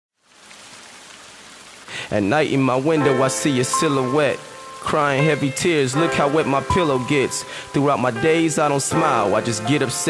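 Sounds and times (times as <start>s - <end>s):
steady rain: 0.2s - 10.0s.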